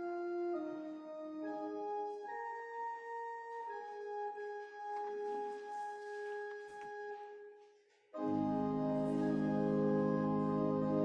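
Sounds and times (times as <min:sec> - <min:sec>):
organ sustained note: 0:08.2 - 0:11.0.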